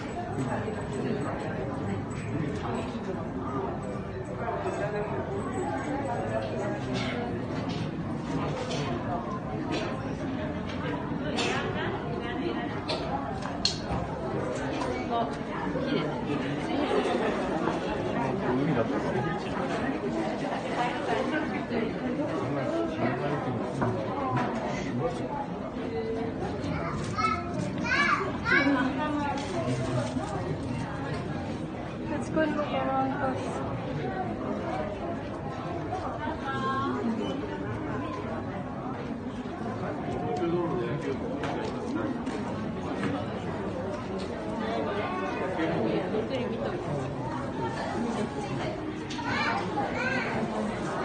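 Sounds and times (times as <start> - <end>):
crowd chatter: 0.0 - 51.0.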